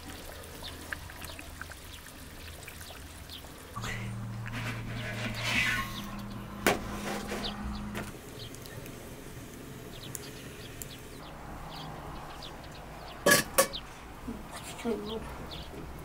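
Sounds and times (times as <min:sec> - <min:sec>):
oil popping: 0:00.0 - 0:11.0
steady low hum: 0:03.8 - 0:08.6.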